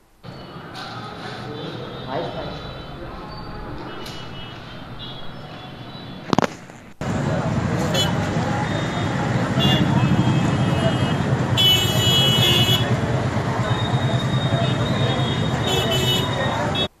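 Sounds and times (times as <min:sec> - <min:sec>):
street noise: 0:00.0 - 0:17.0
vehicle horns honking: 0:00.3 - 0:06.3, 0:07.8 - 0:16.9
crowd talking: 0:00.3 - 0:06.4, 0:07.0 - 0:16.9.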